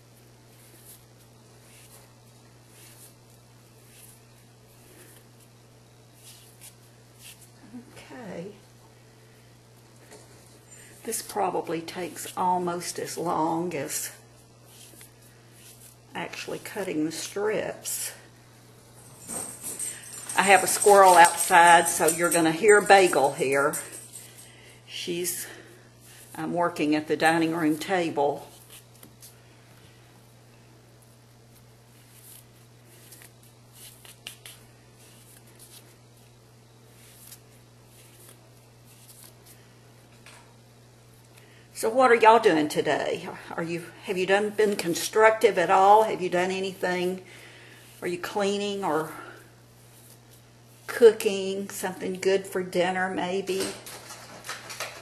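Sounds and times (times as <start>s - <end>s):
steady low hum: 0.0s - 53.5s
fabric strips rustling: 0.4s - 7.8s, 18.9s - 24.6s
fabric rubbing: 0.5s - 5.5s.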